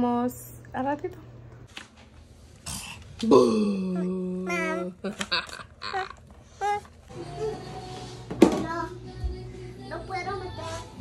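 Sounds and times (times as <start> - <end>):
short vocal sounds: 2.7 - 6.8
person's drawn-out vocal sound: 3.2 - 7.6.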